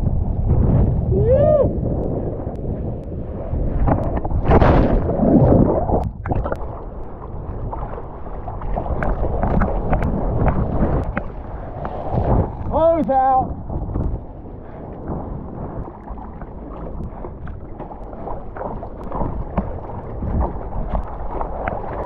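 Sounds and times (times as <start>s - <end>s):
wind buffeting microphone: 0.0s - 22.0s
water rushing and splashing: 3.4s - 22.0s.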